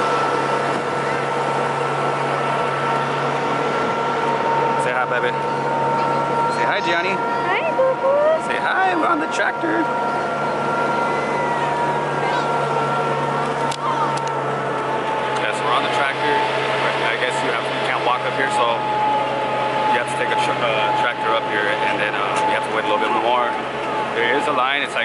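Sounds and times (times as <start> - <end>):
passengers chattering: 0.0 - 25.0
tractor engine running: 0.0 - 25.0.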